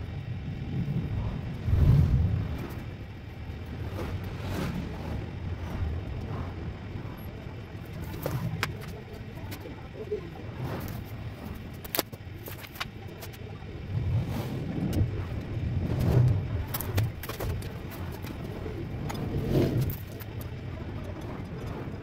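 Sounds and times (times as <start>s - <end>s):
passing motor vehicle rumble: 0.0s - 22.0s
bicycle clicks and knocks: 10.9s - 13.4s.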